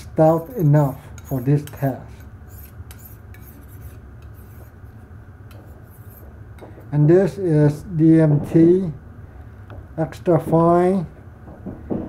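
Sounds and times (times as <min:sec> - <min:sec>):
knife scraping on sharpening plate: 0:00.2 - 0:04.7, 0:05.5 - 0:06.3.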